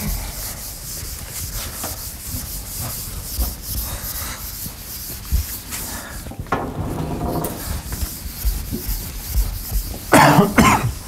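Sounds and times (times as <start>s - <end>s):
eraser rubbing on chalkboard: 0.0s - 11.0s
loud coughs: 10.1s - 11.0s.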